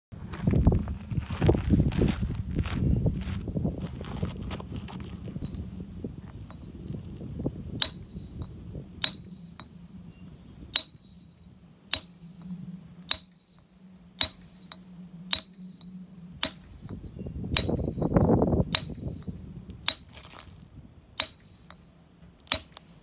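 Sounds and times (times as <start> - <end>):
low rumble: 0.2 - 23.0
hammer striking steel chisel: 7.8 - 9.3, 10.8 - 11.1, 11.9 - 12.3, 13.1 - 13.4, 14.2 - 15.6, 16.4 - 17.0, 17.6 - 18.1, 18.7 - 19.3, 19.9 - 20.2, 21.2 - 21.8, 22.4 - 23.0.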